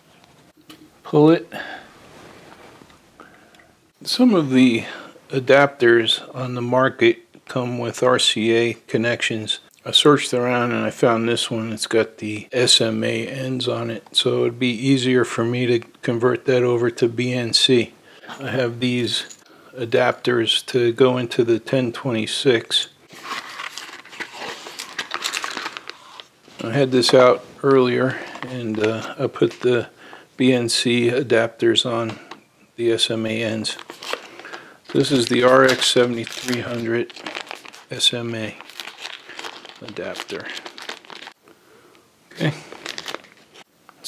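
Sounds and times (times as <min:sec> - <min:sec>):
small box being opened: 0:23.1 - 0:27.2, 0:33.7 - 0:37.8
plastic bag crackling: 0:23.1 - 0:29.6, 0:33.6 - 0:41.4, 0:42.6 - 0:43.6.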